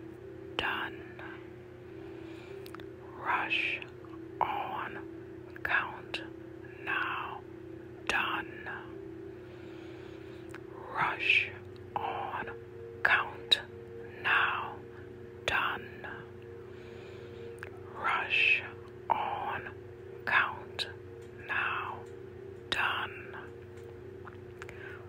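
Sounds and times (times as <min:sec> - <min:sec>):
low humming drone: 0:00.0 - 0:25.0
person whispering: 0:00.6 - 0:01.5, 0:02.7 - 0:09.0, 0:10.6 - 0:16.3, 0:17.6 - 0:22.1, 0:22.7 - 0:23.6.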